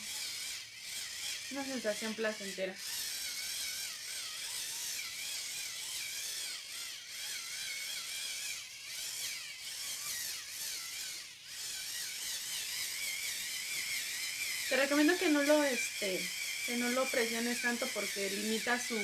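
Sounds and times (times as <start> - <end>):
cleansing brush motor buzzing: 0.0 - 19.0.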